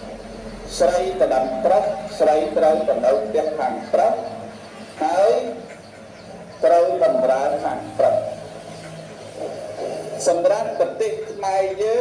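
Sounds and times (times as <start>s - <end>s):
faint voices: 0.0s - 12.0s
steady low hum: 0.0s - 12.0s
man's amplified voice: 0.6s - 5.8s, 6.5s - 8.5s, 10.0s - 12.0s.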